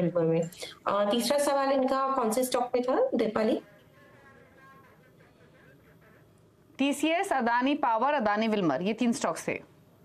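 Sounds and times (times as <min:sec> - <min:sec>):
faint buzz: 0:00.8 - 0:10.0.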